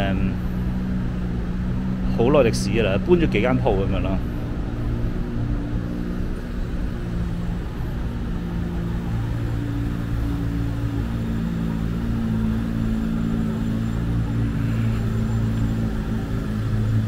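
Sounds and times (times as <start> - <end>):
traffic engine rumble: 0.0 - 17.0.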